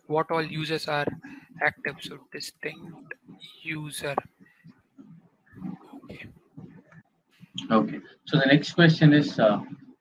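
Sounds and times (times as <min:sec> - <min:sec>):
man speaking into headset microphone: 0:00.0 - 0:04.3, 0:07.6 - 0:09.8.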